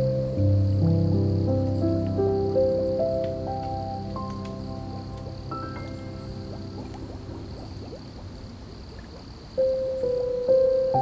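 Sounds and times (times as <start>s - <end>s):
soft piano music: 0.0s - 11.0s
water trickling: 1.8s - 11.0s.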